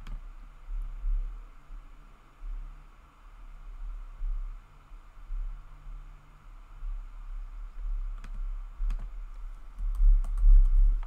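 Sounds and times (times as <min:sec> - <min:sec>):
computer keyboard typing: 0:08.2 - 0:11.0.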